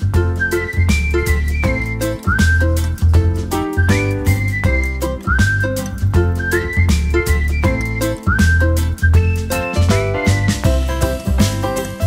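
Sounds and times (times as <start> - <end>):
bass line: 0.0 - 12.0
steady beat: 0.0 - 12.0
whistled melody: 0.0 - 12.0.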